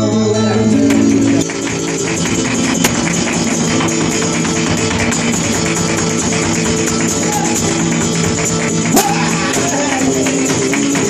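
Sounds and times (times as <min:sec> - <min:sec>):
flamenco guitar: 0:00.0 - 0:11.0
heel-and-toe dance footwork: 0:00.7 - 0:11.0
sharp hand-clapping: 0:00.9 - 0:11.0.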